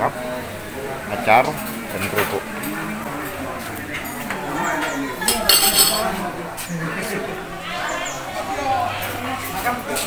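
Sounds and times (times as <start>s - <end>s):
serving spoons clinking on metal dishes: 1.6s - 6.2s.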